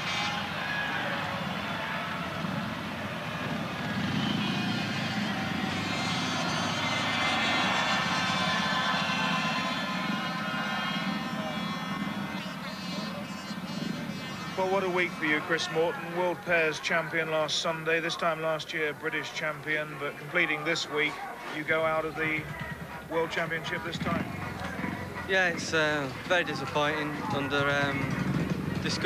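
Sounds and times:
motorcycles running at low throttle: 0.0s - 15.6s, 22.2s - 29.0s
crowd noise: 0.0s - 29.0s.

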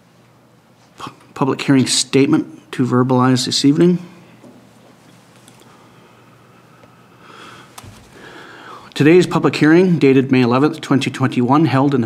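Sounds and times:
person breathing in close to microphone: 5.6s - 9.0s.

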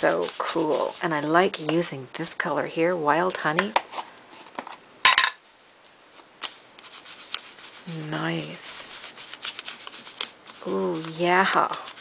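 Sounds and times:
blending tool scraping ink pad: 0.0s - 1.7s, 6.4s - 12.0s.

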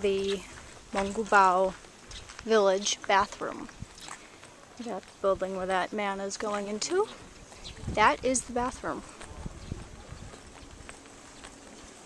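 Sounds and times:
footsteps on uneven ground: 0.0s - 12.0s.

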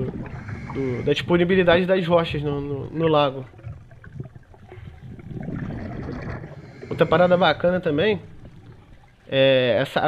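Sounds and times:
crackling underwater rush of water: 0.0s - 10.0s
bubbles underwater: 3.3s - 9.3s.

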